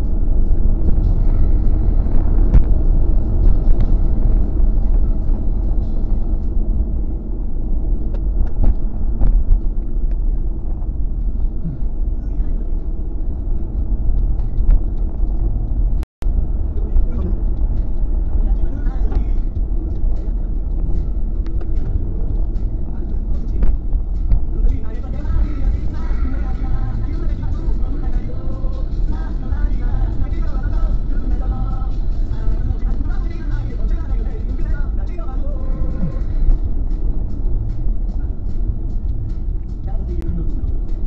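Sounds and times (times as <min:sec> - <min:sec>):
road and engine drone inside car: 0:00.0 - 0:41.0.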